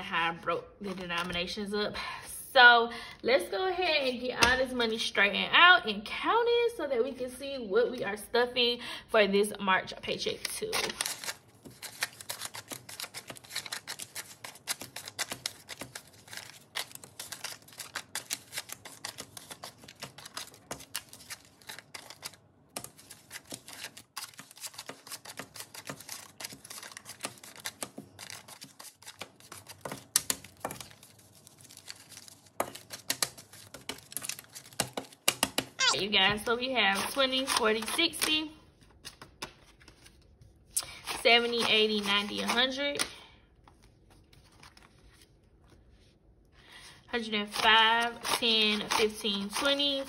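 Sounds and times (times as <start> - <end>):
banknotes rustling: 0.8 - 1.7, 10.1 - 46.0, 46.8 - 50.0.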